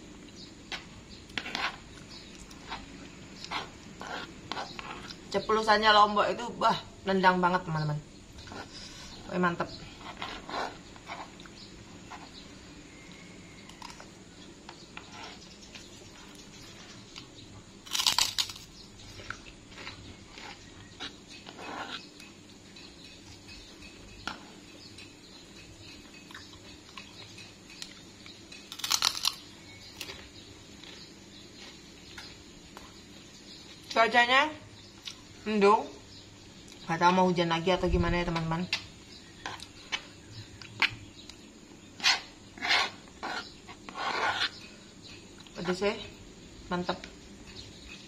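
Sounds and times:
cracker crunches: 17.8 - 20.5, 28.7 - 30.2
chewing: 17.9 - 22.4, 25.9 - 32.9
metal spoon scraping plastic plate: 42.0 - 44.7.

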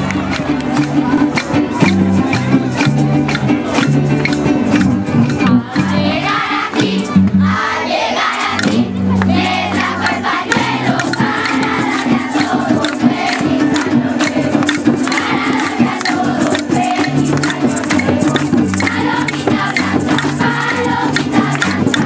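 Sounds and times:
bass and percussion accompaniment: 0.0 - 22.0
children singing: 5.4 - 22.0.

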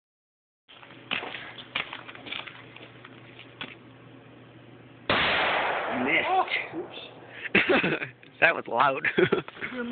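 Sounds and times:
loud blast: 5.1 - 7.5.

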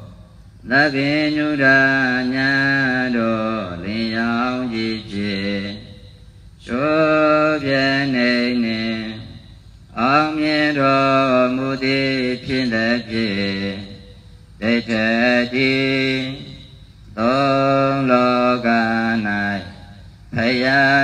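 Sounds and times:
person chanting: 0.0 - 21.0.

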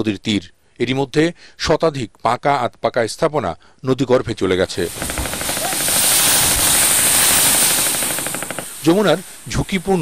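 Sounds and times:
building collapsing into river: 4.7 - 9.3
crackle of small impacts: 4.8 - 9.0.

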